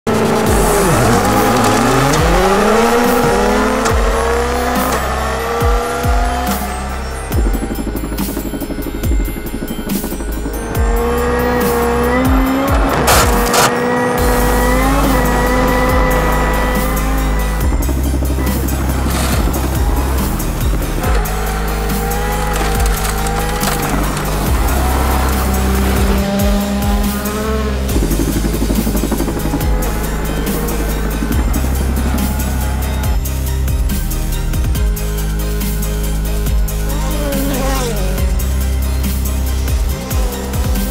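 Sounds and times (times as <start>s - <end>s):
rally car engine revving: 0.0s - 40.9s
background music with steady beat: 0.1s - 40.9s.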